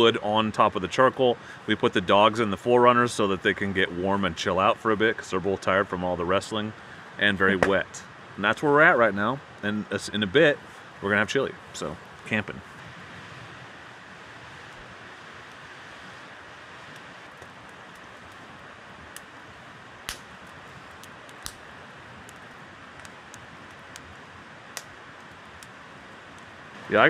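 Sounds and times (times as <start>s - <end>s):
campfire crackling: 0.0s - 27.0s.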